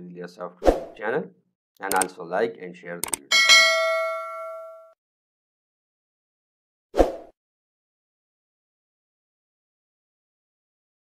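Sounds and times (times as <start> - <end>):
bell-like ding: 3.3 - 5.0.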